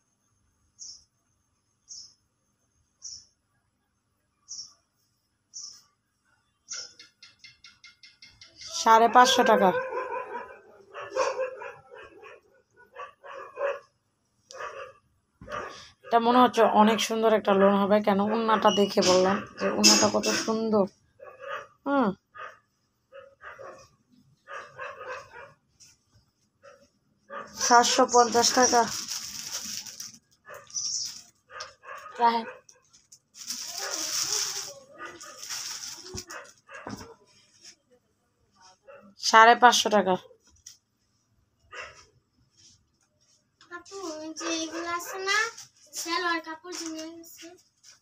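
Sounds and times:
dog barking and yipping: 8.8 - 13.9, 14.5 - 16.2, 17.5 - 20.5, 21.2 - 21.8, 22.4 - 25.6, 26.6 - 28.8, 30.4 - 32.9, 33.6 - 37.2, 41.7 - 42.1, 44.4 - 45.4
cloth rustling: 28.3 - 30.2, 32.8 - 37.8.

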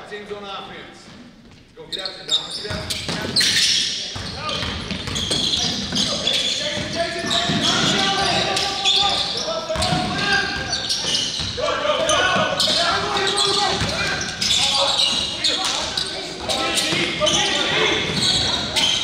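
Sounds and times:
players' voices calling out: 2.1 - 19.0.

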